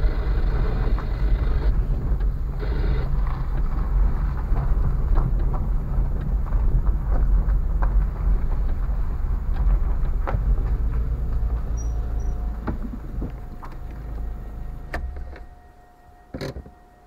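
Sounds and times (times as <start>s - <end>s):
car rolling over rough ground: 0.0s - 16.9s
knocks and clicks: 0.8s - 14.3s.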